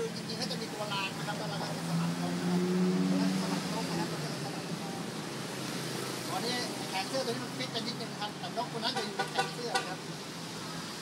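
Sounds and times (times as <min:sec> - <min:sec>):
man speaking: 0:00.0 - 0:05.1, 0:06.3 - 0:10.1
street traffic: 0:00.0 - 0:11.0.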